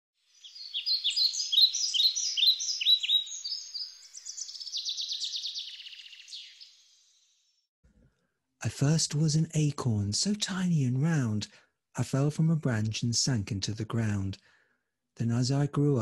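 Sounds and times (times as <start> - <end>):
songbird chirping and trilling: 0.2 - 7.6.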